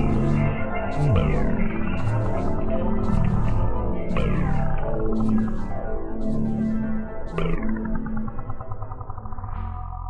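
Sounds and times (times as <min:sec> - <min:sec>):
film score drones: 0:00.0 - 0:10.0.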